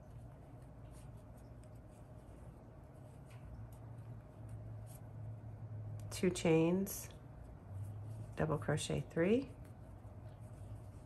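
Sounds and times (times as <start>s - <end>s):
low steady hum: 0.0s - 11.0s
yarn rustling with crochet hook: 0.0s - 11.0s.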